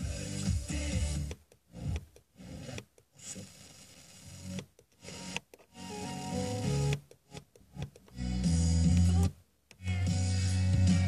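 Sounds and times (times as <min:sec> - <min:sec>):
radio static hiss: 0:00.0 - 0:07.0.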